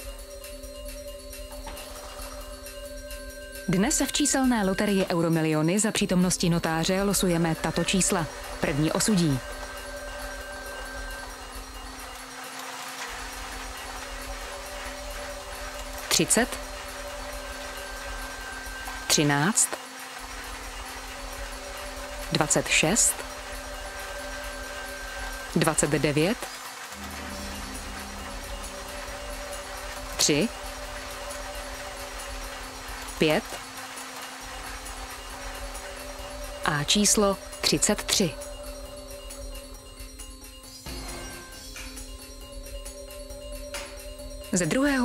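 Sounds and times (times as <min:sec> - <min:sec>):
background music with held tones: 0:00.0 - 0:45.0
machine humming: 0:06.9 - 0:39.4.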